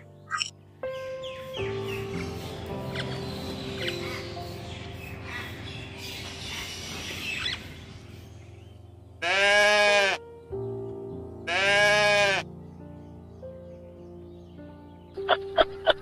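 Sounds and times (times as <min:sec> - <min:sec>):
background music: 0:00.0 - 0:16.0
goat bleating: 0:09.2 - 0:10.2, 0:11.5 - 0:12.5.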